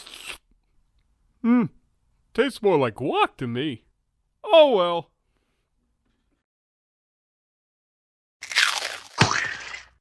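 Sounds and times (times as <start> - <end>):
cartoon taco shell crunches: 0.0 - 0.4, 8.4 - 10.0.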